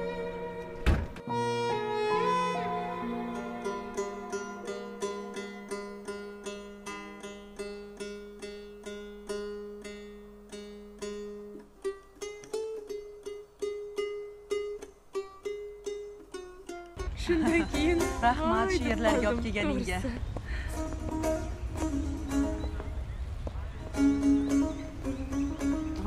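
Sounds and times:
plucked lute melody: 0:00.0 - 0:20.1, 0:20.7 - 0:26.0.

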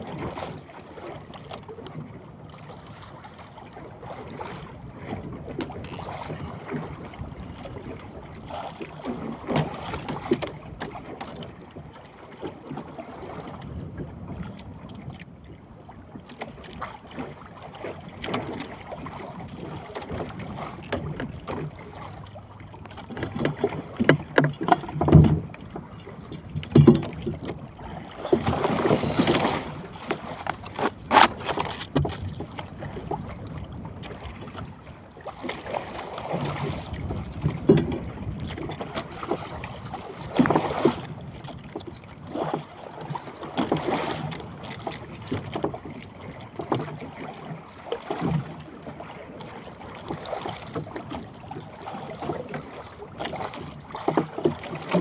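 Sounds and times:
sea water slapping against boat hull: 0:00.0 - 0:15.3, 0:16.0 - 0:55.0
boat knocks: 0:03.8 - 0:15.3, 0:16.1 - 0:55.0
wind on microphone: 0:23.2 - 0:35.0, 0:35.9 - 0:42.4.

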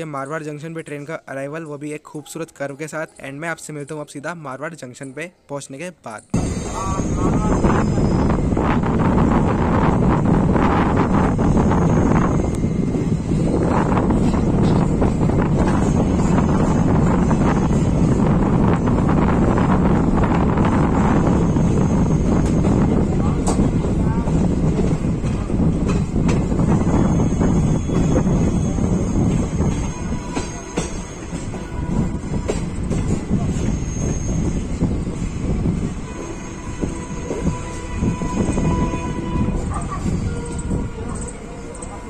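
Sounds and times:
train rumble with rail clicks: 0:06.2 - 0:42.0
wheel flanges squealing: 0:26.6 - 0:32.0, 0:32.6 - 0:35.0.

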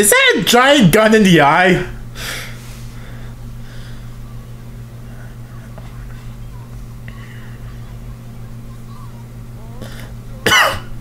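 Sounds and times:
electrical hum: 0:00.0 - 0:11.0
person coughing: 0:10.4 - 0:10.9.

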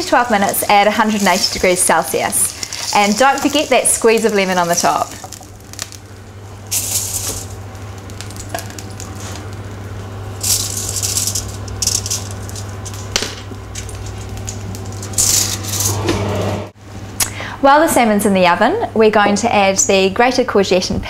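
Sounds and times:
fish sizzling in a frying pan: 0:00.3 - 0:12.9
low hum: 0:00.6 - 0:17.5.

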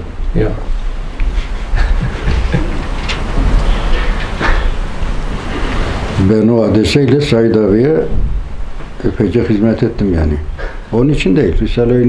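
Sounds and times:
steady low rumble: 0:00.0 - 0:12.0
men laughing: 0:01.2 - 0:05.8, 0:08.9 - 0:09.8.

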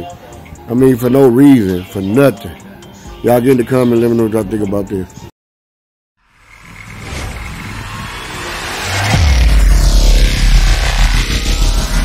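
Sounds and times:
vault door mechanism whirring: 0:06.4 - 0:12.0.

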